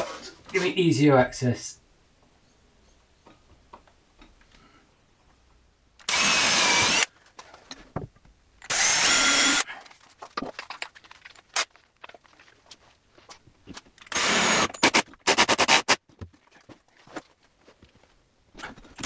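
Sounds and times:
cordless drill boring into wood: 6.0s - 7.1s, 8.7s - 9.6s, 14.1s - 16.0s.

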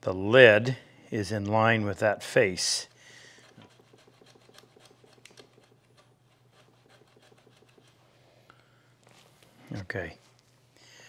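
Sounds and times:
low room hum: 0.0s - 11.0s
pencil scraping strokes: 2.3s - 8.4s.

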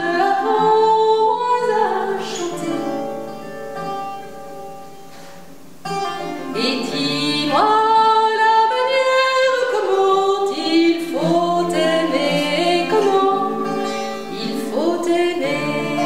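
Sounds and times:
woman singing slow song: 0.0s - 3.2s, 6.4s - 16.0s.

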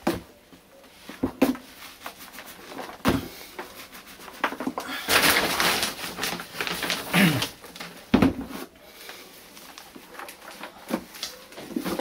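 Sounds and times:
hands rustling potting soil: 0.0s - 12.0s.

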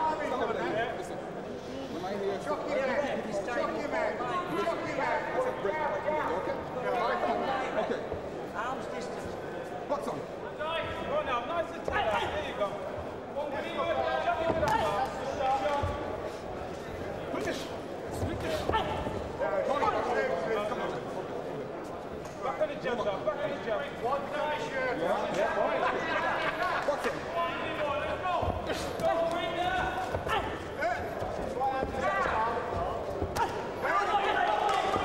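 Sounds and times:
arena crowd voices: 0.0s - 35.0s.

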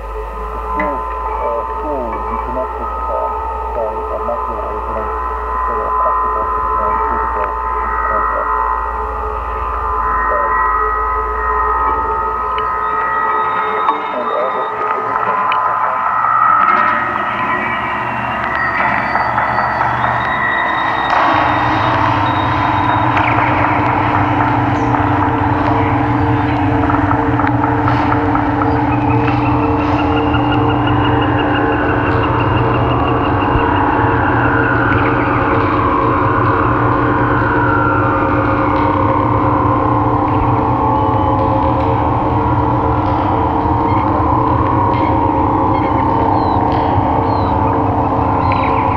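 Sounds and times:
deeper drone: 0.0s - 48.9s
wind-driven droning tones: 0.0s - 48.9s.

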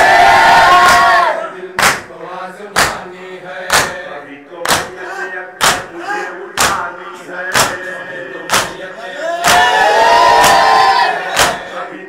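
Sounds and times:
crowd beating chests: 0.0s - 2.1s, 2.8s - 3.1s, 3.7s - 4.0s, 4.6s - 6.9s, 7.5s - 11.8s
men shouting a held cry: 9.0s - 11.9s.

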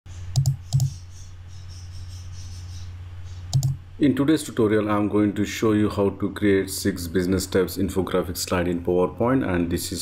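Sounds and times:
steady low hum: 0.1s - 10.0s
computer mouse clicks: 0.3s - 1.0s, 3.5s - 3.8s.

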